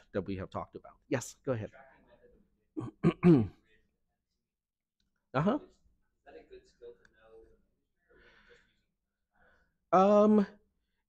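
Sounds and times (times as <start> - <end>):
man clearing his throat: 2.8 - 3.6.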